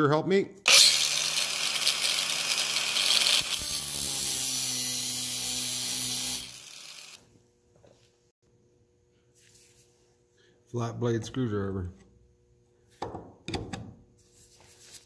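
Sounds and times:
angle grinder cutting: 0:00.7 - 0:07.2.

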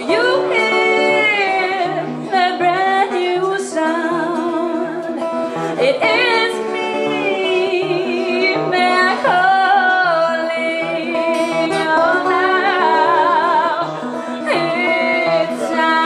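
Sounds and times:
strummed acoustic guitar: 0:00.0 - 0:16.0
woman singing with vibrato: 0:00.0 - 0:16.0.

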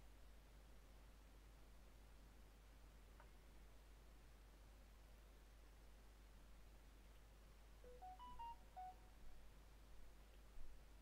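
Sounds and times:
faint electronic beeps: 0:07.8 - 0:09.2.

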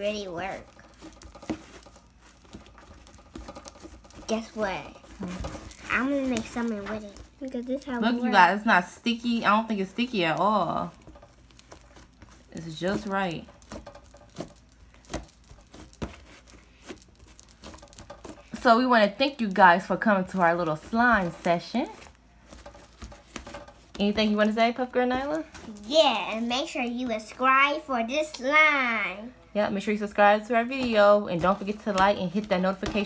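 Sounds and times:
slime squelching and popping: 0:10.4 - 0:18.6.

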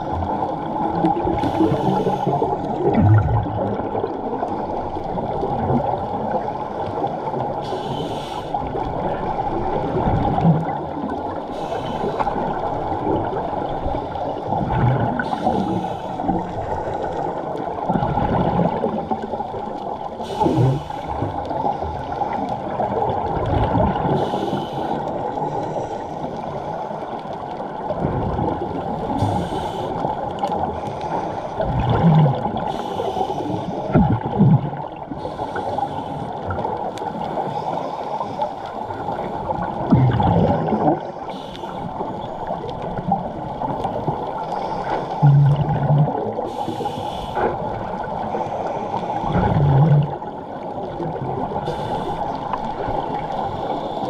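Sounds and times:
muffled underwater rush: 0:00.0 - 0:54.0
scuba regulator exhaust bubbles: 0:00.0 - 0:54.0.

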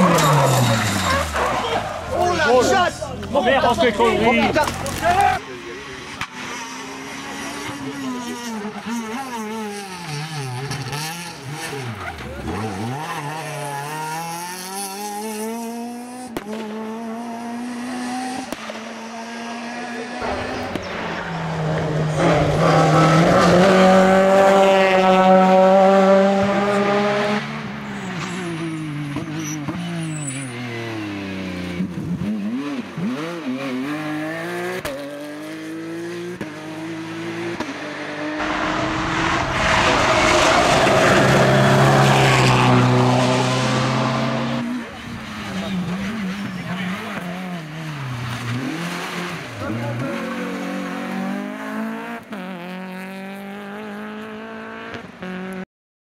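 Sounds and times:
rally car engines revving past: 0:00.0 - 0:55.6.

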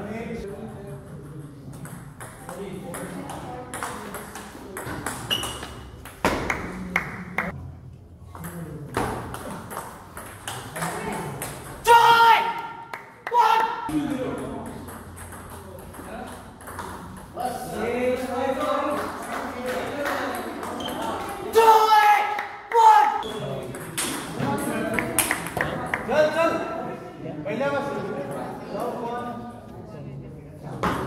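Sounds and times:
voices in a hall: 0:00.0 - 0:31.0
loud shout: 0:11.8 - 0:13.9, 0:21.5 - 0:23.2.

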